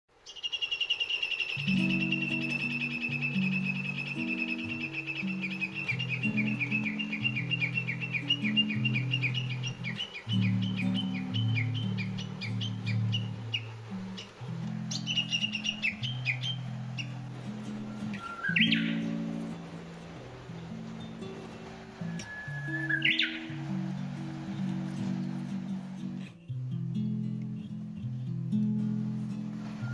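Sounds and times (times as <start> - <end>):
songbird chirping: 0.1 - 29.9
soft instrumental music: 1.6 - 29.9.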